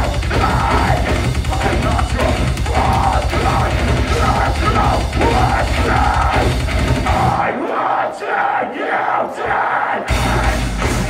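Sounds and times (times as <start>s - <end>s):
live metal band playing loudly: 0.0s - 7.4s, 10.1s - 11.0s.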